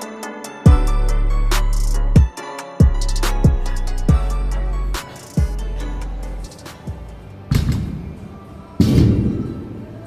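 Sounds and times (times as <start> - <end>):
music with a beat: 0.0 - 8.0.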